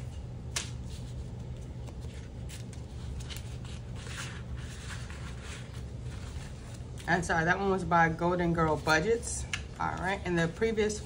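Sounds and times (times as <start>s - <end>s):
steady low hum: 0.0s - 11.0s
paper bills rustling: 0.5s - 7.5s.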